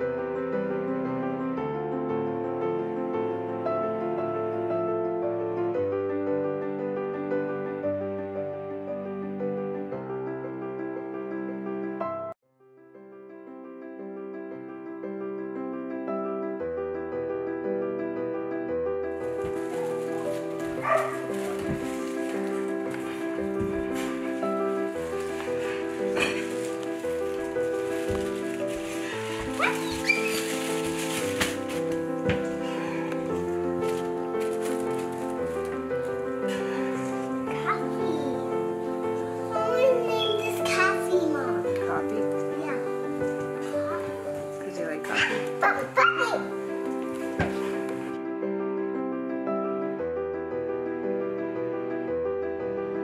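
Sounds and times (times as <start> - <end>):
background music: 0.0 - 12.4, 13.2 - 53.0
puppy barking: 19.8 - 21.8, 29.5 - 30.5, 45.1 - 46.5
puppy yipping: 20.8 - 21.3, 29.5 - 30.6.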